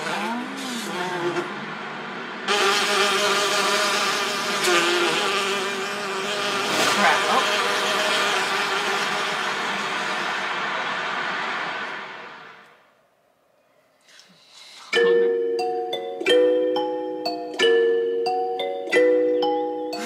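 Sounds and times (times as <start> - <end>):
loud wavering buzzing drone: 0.0 - 12.3.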